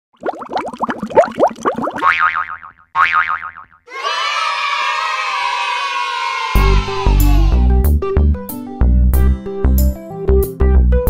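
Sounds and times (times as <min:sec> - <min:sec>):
wobbly boing tones: 0:00.2 - 0:03.8.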